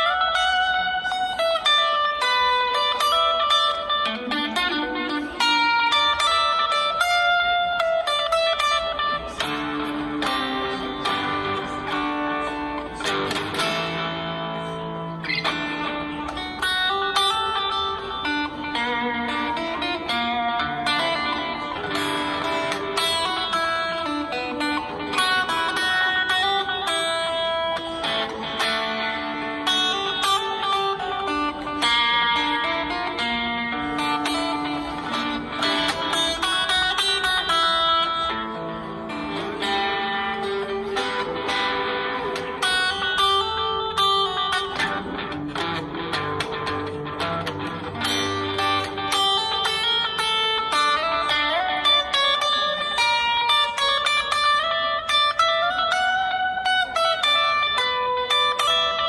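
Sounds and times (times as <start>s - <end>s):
electric guitar playing blues: 0.0s - 59.0s.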